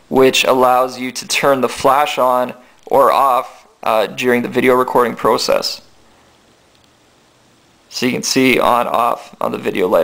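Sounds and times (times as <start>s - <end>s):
man speaking: 0.0s - 6.0s, 7.9s - 10.0s
faint room tone hiss: 0.0s - 10.0s.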